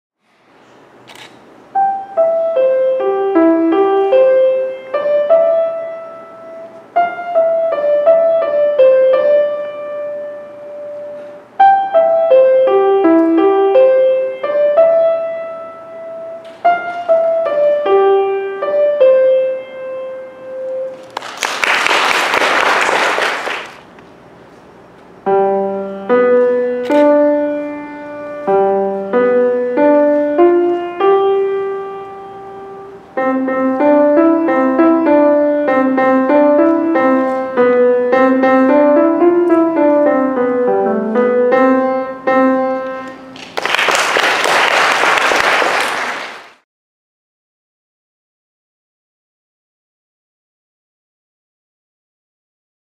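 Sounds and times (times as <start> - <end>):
solo grand piano: 1.7 - 22.5, 25.2 - 46.6.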